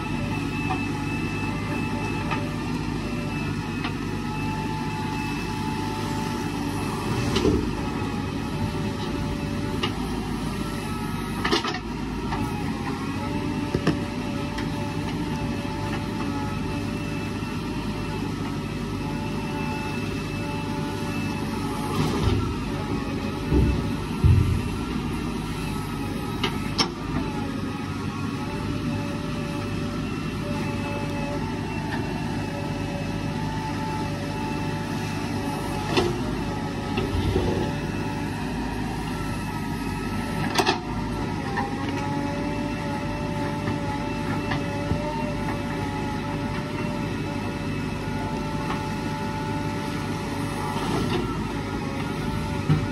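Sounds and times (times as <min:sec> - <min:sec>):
diesel engine running with whine: 0:00.0 - 0:52.9.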